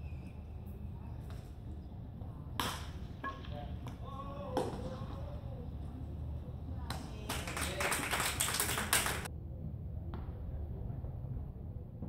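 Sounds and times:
low outdoor rumble: 0.0s - 12.0s
rapid clapping: 7.3s - 9.3s.

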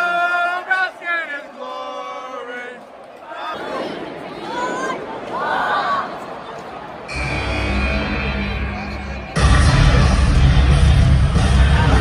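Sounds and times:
entrance music over arena speakers: 6.5s - 12.0s.

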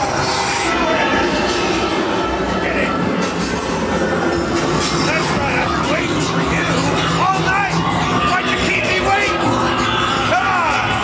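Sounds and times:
rumbling industrial noise: 0.0s - 11.0s.

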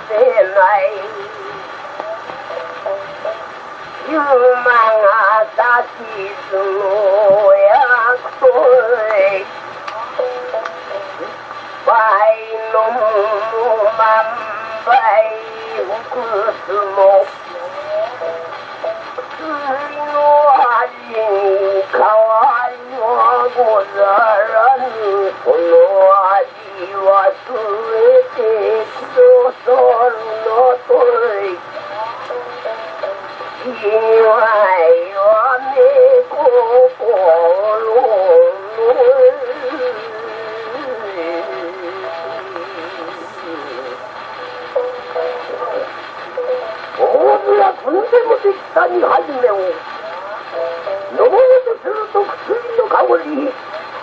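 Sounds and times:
man chanting on old gramophone: 0.0s - 54.0s
record surface hiss and hum: 0.0s - 54.0s.

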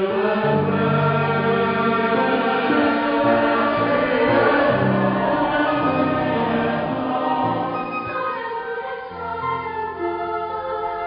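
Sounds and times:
choir singing a hymn: 0.0s - 11.0s.

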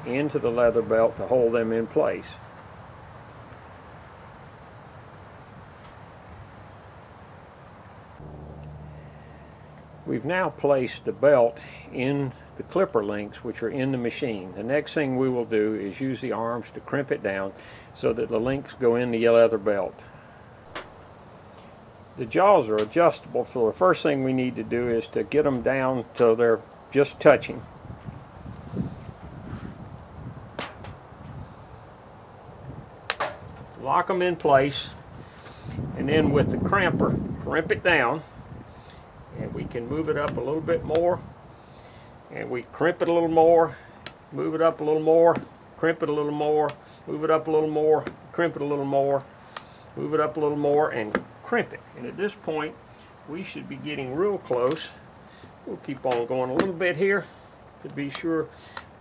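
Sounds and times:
low background noise: 0.0s - 28.5s, 37.5s - 59.0s
low steady hum: 6.8s - 26.5s
low handling noise: 8.1s - 12.8s, 20.6s - 21.8s.

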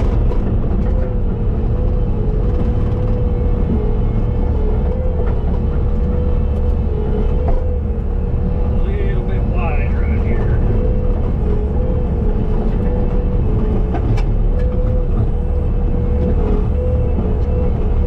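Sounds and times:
diesel loader engine rumbling: 0.0s - 18.0s.

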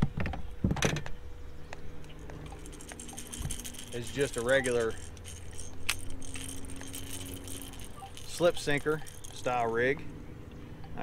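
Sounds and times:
steady low hum: 0.0s - 11.0s
fishing tackle knocks and clicks: 2.2s - 9.8s
metallic jingling of tackle: 2.2s - 10.2s.

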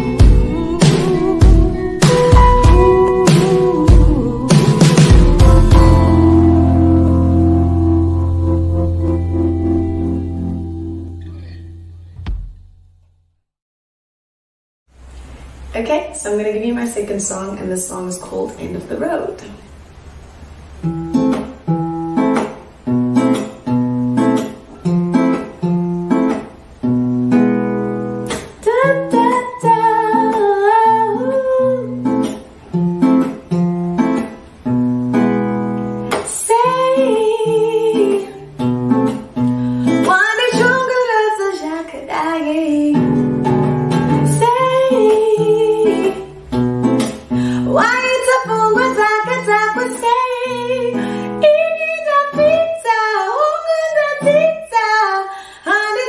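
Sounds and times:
woman singing: 0.0s - 6.8s, 28.6s - 32.1s, 36.2s - 38.5s, 39.9s - 43.3s, 44.1s - 46.4s, 47.6s - 56.0s
strummed nylon-string guitar: 0.0s - 13.0s, 20.7s - 55.1s.

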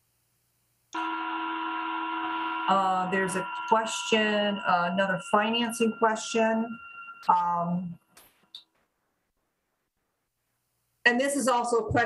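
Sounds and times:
microphone electrical hum: 0.0s - 8.0s.

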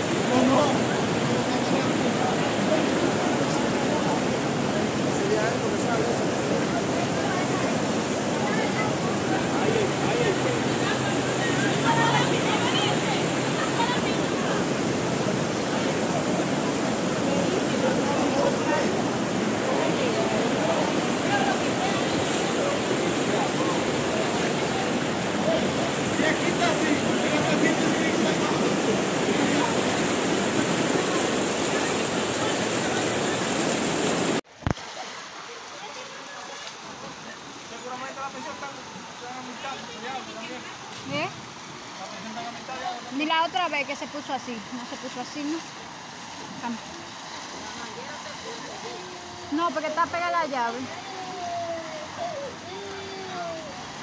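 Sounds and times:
floodwater rushing: 0.0s - 54.0s.

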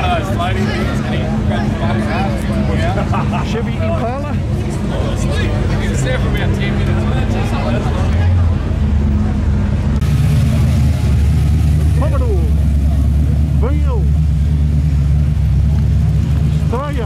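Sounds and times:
car engine idling: 0.0s - 17.0s.

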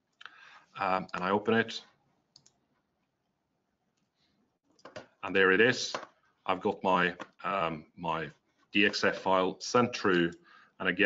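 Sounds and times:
computer mouse clicks: 2.3s - 2.6s.

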